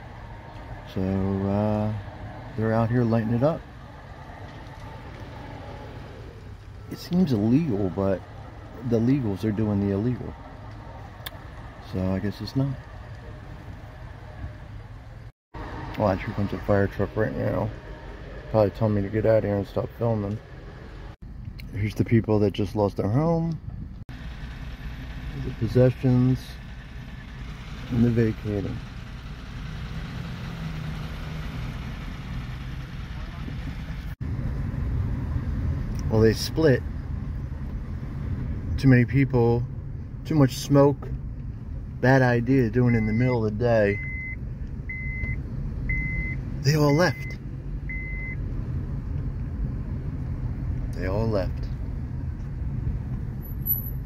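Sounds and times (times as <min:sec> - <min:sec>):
low rumble of vehicle noise: 0:00.0 - 0:54.0
road noise: 0:00.0 - 0:54.0.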